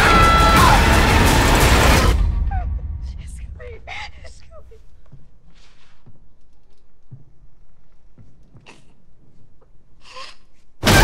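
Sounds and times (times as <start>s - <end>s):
woman screaming: 0.0s - 0.8s
loud crash: 0.0s - 3.7s
woman gasping: 2.6s - 5.0s.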